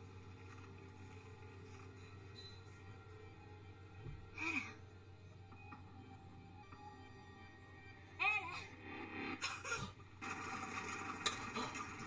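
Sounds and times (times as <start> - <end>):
soft music with held tones: 0.0 - 12.0.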